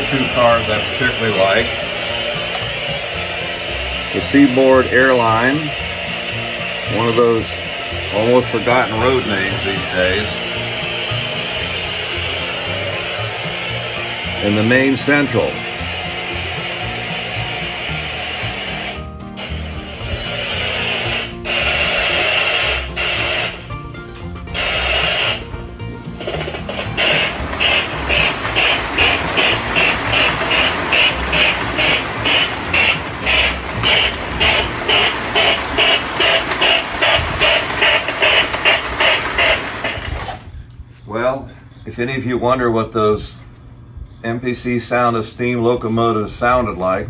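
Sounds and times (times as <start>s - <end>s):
model train steam chuffing: 0.0s - 23.6s, 26.2s - 40.4s.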